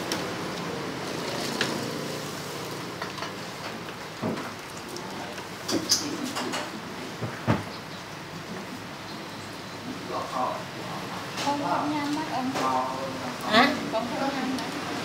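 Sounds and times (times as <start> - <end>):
water boiling in a pot: 0.0 - 6.3.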